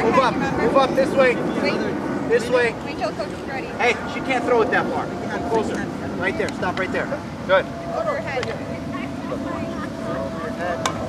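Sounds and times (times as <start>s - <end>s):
distant voices calling: 0.0s - 11.0s
steady low rumble: 0.0s - 11.0s.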